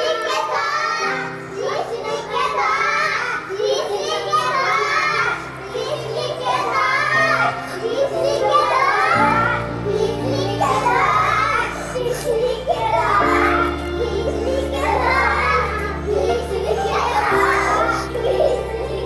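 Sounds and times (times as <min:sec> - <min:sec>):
background music with low drone: 0:00.0 - 0:19.0
girls chanting in play: 0:00.0 - 0:19.0.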